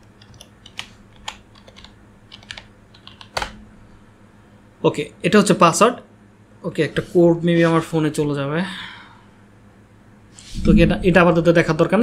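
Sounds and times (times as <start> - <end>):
computer keyboard key clicks: 0.1 - 3.6.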